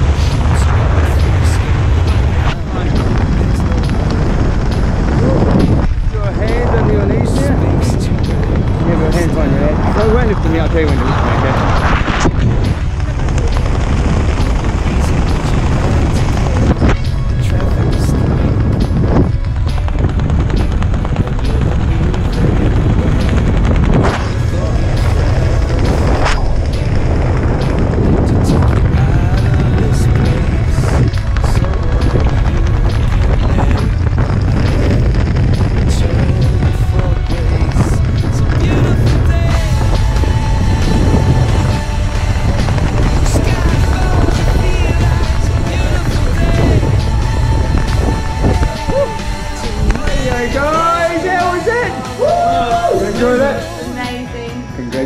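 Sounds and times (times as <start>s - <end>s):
music with heavy bass: 0.0s - 55.0s.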